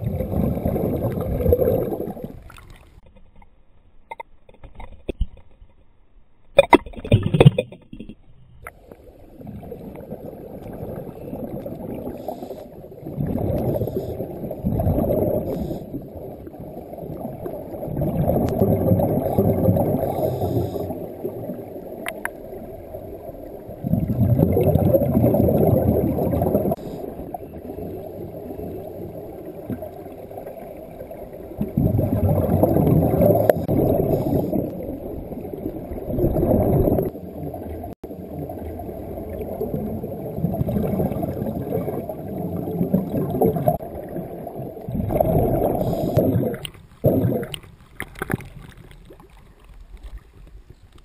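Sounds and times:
underwater bubbling rumble: 0:00.0 - 0:03.1, 0:08.7 - 0:50.9.

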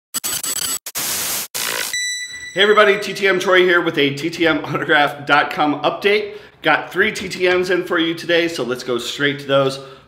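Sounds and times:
harsh static hiss bursts: 0:00.2 - 0:02.0.

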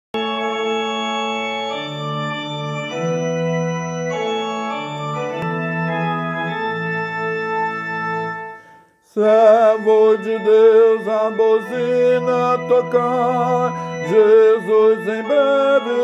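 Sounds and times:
organ playing slow chords: 0:00.2 - 0:16.0.

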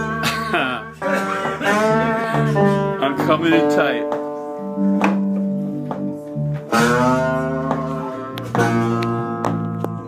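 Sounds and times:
acoustic guitar chords: 0:00.0 - 0:10.0
bass guitar notes: 0:00.0 - 0:10.0.

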